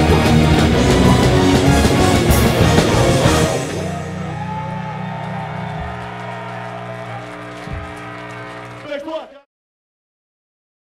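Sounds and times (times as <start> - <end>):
distorted guitars and bass sustaining: 0.0 - 8.9.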